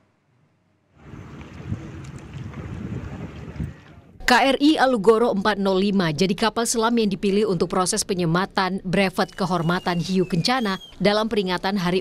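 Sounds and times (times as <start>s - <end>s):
wind rumbling on microphone: 1.0s - 4.3s.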